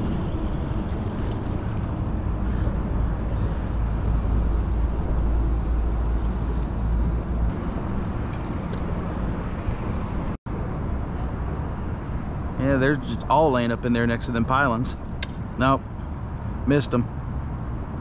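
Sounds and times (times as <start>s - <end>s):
wind rumbling on microphone: 0.0s - 13.4s.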